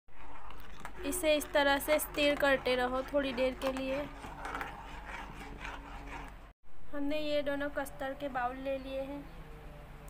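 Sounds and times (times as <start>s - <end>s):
spoon scraping steel pan: 0.5s - 6.4s.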